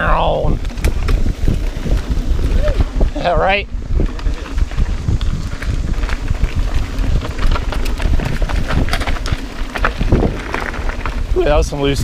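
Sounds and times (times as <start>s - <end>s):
bike rattling: 0.0s - 12.0s
bike tyres rumbling over dirt: 0.0s - 12.0s.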